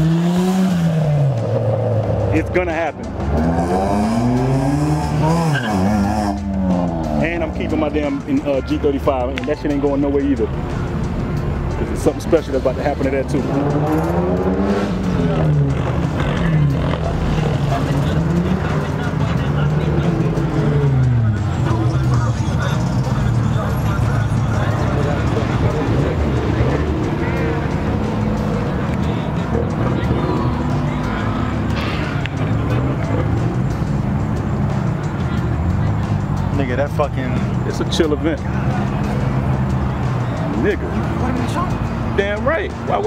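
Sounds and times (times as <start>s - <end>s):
background music with vocals: 0.0s - 43.0s.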